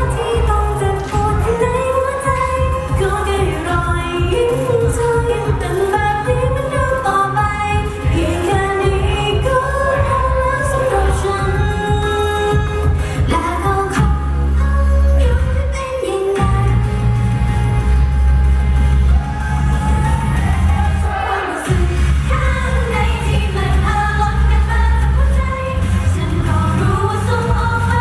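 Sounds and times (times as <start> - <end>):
backing track with bass beat: 0.0 - 15.8, 16.4 - 28.0
female vocal singing pop song: 0.0 - 28.0.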